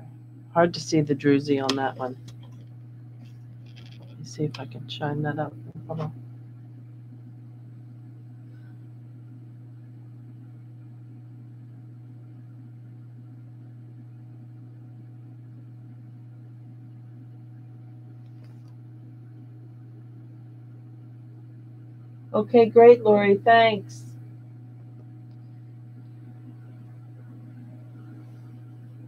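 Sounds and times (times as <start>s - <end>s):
steady low hum: 0.0s - 29.0s.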